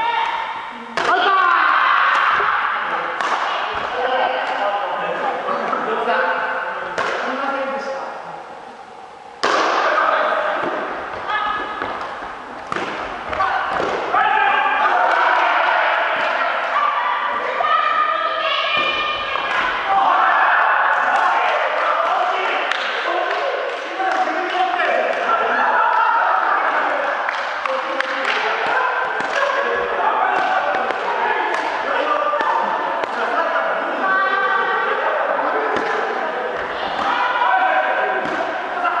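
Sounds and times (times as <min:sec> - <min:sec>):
rackets hitting shuttlecock: 0:03.1 - 0:04.6, 0:06.9 - 0:07.3, 0:09.4 - 0:10.0, 0:10.6 - 0:14.2, 0:27.3 - 0:33.3, 0:35.7 - 0:37.4, 0:38.0 - 0:38.6
players calling out: 0:08.6 - 0:39.0.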